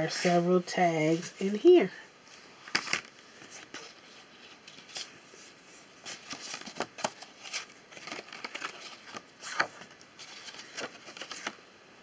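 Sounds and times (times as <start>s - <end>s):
paper pages turning: 2.3s - 11.6s.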